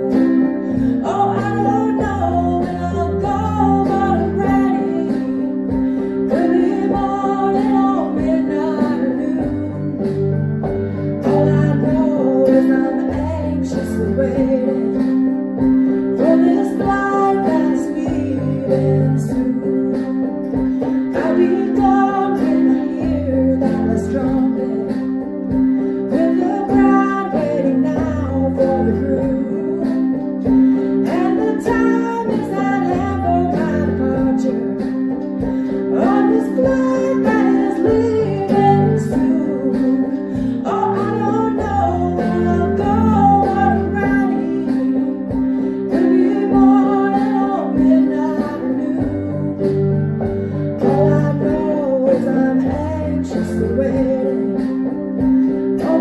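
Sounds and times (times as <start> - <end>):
electronic keyboard chords: 0.0 - 56.0
woman singing: 0.0 - 56.0.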